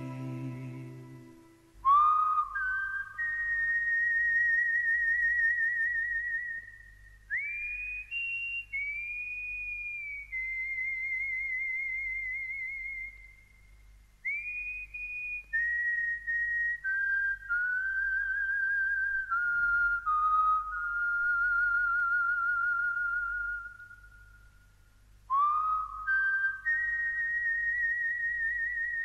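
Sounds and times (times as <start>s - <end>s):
faint low hum: 0.0s - 29.0s
person whistling a melody: 25.3s - 29.0s.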